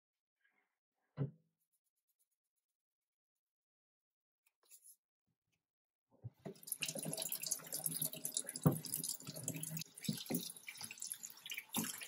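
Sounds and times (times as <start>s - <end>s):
tap water splashing: 6.4s - 12.0s
hands rinsing chicken: 6.5s - 12.0s.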